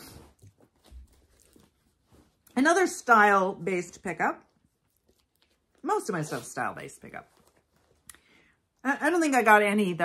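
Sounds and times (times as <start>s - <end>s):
clothing rustling: 0.0s - 8.6s.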